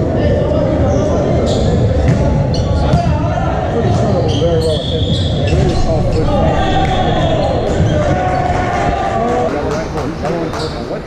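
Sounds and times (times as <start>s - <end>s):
players calling out: 0.2s - 11.0s
sneakers squeaking on gym floor: 0.9s - 3.1s, 4.0s - 8.6s.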